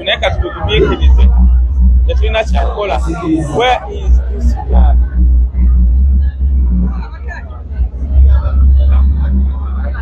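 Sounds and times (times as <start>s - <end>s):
crowd chatter: 0.0s - 10.0s
loud low rumble: 0.0s - 10.0s.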